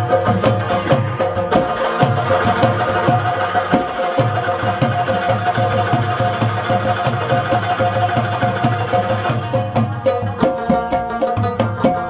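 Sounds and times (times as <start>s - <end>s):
hand drum: 0.0s - 12.0s
plucked lute: 0.0s - 12.0s.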